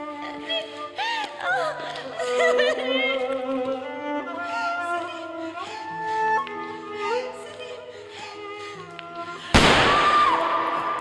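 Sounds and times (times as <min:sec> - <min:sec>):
pistol gunshot with echo: 0:09.6 - 0:10.9.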